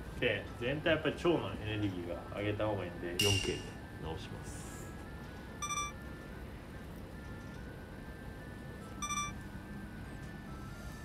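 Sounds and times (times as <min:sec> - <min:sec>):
soft background music: 0:00.0 - 0:11.0
bright electronic chime: 0:05.6 - 0:06.0, 0:09.0 - 0:09.4.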